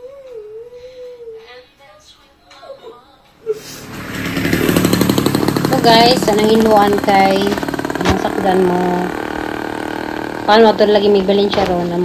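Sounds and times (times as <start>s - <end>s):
motorcycle engine approaching: 3.8s - 12.0s.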